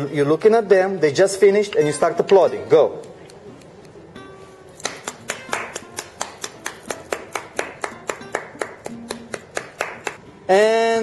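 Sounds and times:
rhythmic hand clapping: 4.8s - 10.2s.

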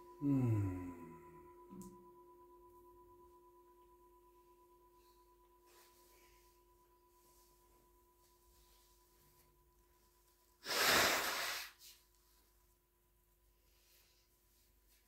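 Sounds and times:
faint two-pitch ringing tone: 0.0s - 10.6s.

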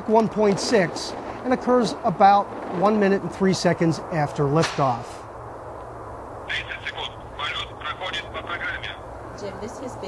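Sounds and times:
steady low hum: 0.0s - 10.0s
tinny voice over radio: 6.5s - 9.0s.

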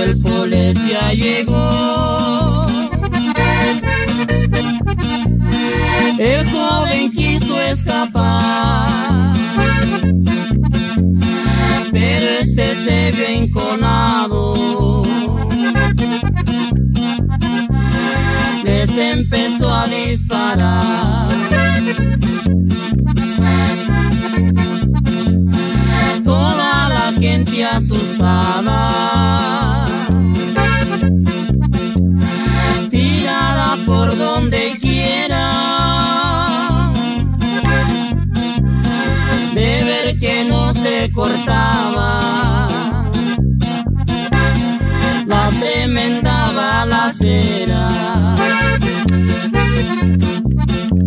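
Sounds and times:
pulsing bass beat: 0.0s - 51.0s
accordion playing quick notes: 2.7s - 6.3s, 9.0s - 12.4s, 15.0s - 18.6s, 21.3s - 27.1s, 29.9s - 34.3s, 35.6s - 39.6s, 43.1s - 45.5s, 48.4s - 51.0s.

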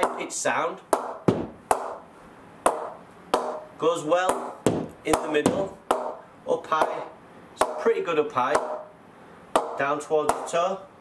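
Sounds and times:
cricket bat tapping ball: 0.0s - 8.9s, 9.5s - 10.6s.

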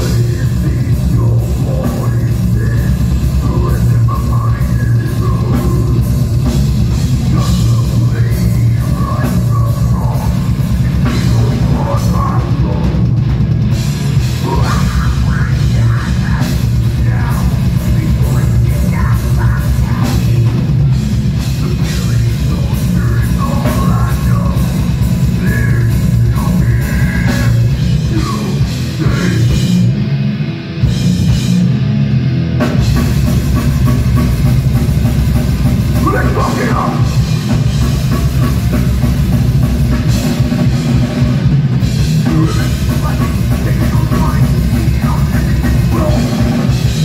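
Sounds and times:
singer growling: 0.0s - 6.2s, 7.0s - 13.3s, 14.3s - 20.8s, 21.4s - 30.1s, 36.0s - 37.8s, 42.1s - 47.0s
fast drum beat: 0.0s - 29.9s, 32.6s - 47.0s
distorted guitars and bass: 0.0s - 47.0s.

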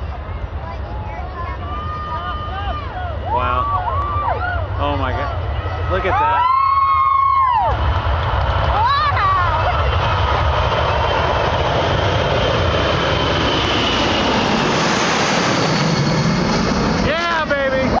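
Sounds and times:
jet engines at takeoff power: 0.0s - 18.0s.

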